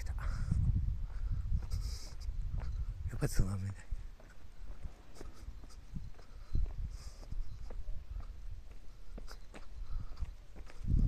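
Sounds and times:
footsteps on pavement: 0:01.0 - 0:11.0.

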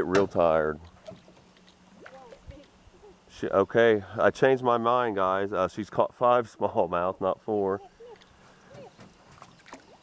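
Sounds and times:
small water splashes: 0:00.0 - 0:02.8, 0:07.9 - 0:10.0.

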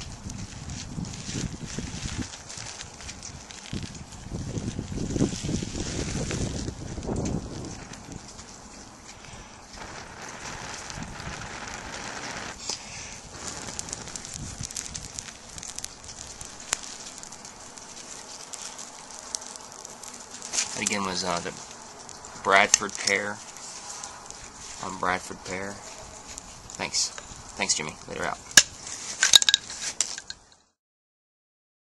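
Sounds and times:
tinder crackling and hissing: 0:00.0 - 0:30.8
person blowing into tinder: 0:09.1 - 0:15.6.

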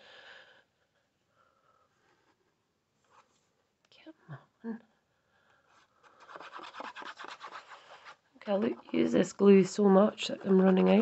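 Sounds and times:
glue bottle tip scratching card: 0:06.0 - 0:09.2.

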